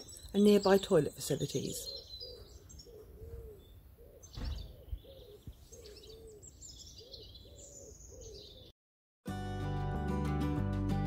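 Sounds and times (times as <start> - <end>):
songbirds chirping: 0.0 - 8.8
pigeon cooing: 1.6 - 8.7
short bump: 4.3 - 4.8.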